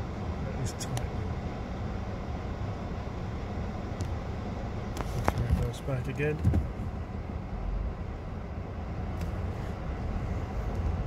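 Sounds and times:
vehicle engines idling: 0:00.0 - 0:11.0.

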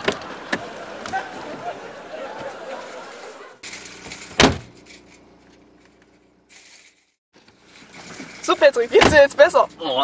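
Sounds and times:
car door slamming: 0:04.3 - 0:04.8.

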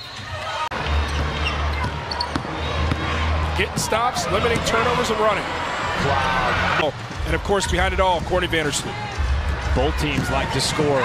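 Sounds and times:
arena music with low bass: 0:00.7 - 0:11.0.

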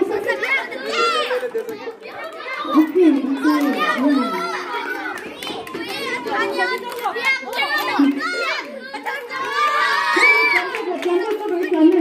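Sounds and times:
children shouting and chattering: 0:00.0 - 0:12.0.

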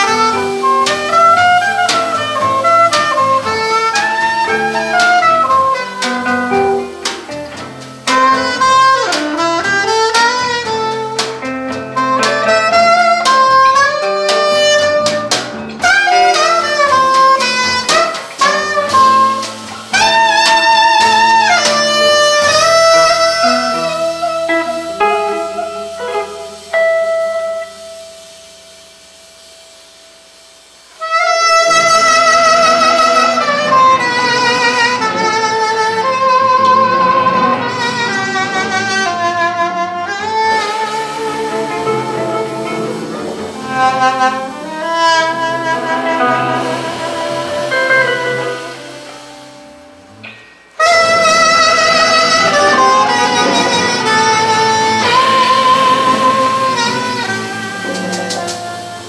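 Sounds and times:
electric bass: 0:00.0 - 0:27.8, 0:31.2 - 0:59.0
soprano saxophone melody: 0:00.0 - 0:28.4, 0:31.0 - 0:59.0
drum kit: 0:00.0 - 0:59.0
electric guitar: 0:00.0 - 0:59.0.

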